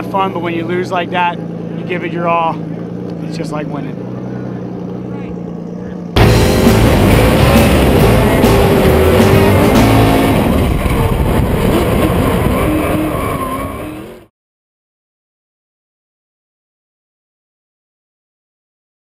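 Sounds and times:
tyres skidding: 0.0 - 14.3
car engine revving hard: 6.1 - 14.3.

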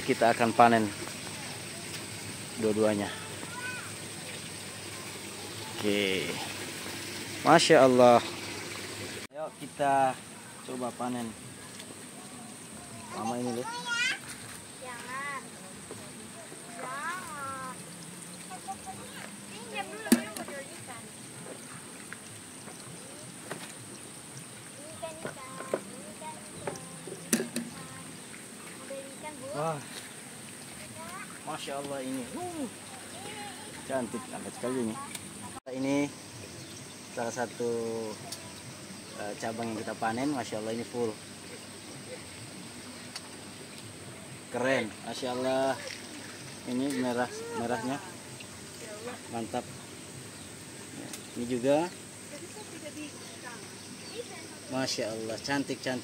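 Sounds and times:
faint water trickle: 0.0 - 56.0
soft hiss: 0.0 - 56.0.

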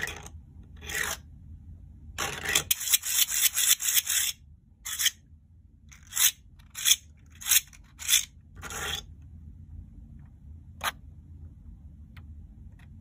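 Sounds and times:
plastic fidget toy rasping: 2.2 - 5.2, 5.9 - 9.1.

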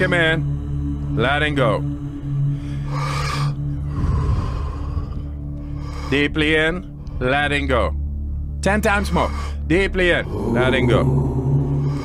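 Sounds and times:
ambient music drone: 0.0 - 12.0
person breathing deeply: 2.4 - 7.2, 9.2 - 12.0.

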